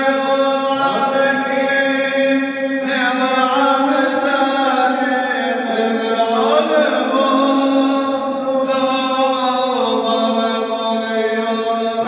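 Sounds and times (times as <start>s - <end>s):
man chanting a hymn with echo: 0.0s - 12.0s.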